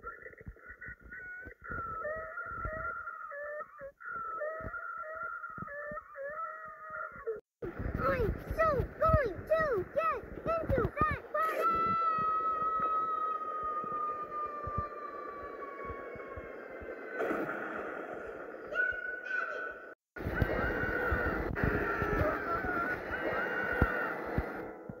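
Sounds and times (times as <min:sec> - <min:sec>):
high wavering cries: 0:00.9 - 0:07.4, 0:10.6 - 0:24.8
high-pitched falling scream: 0:11.4 - 0:19.7.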